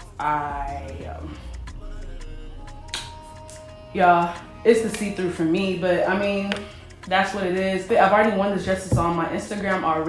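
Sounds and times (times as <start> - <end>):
background music bass line: 0.0 - 10.0.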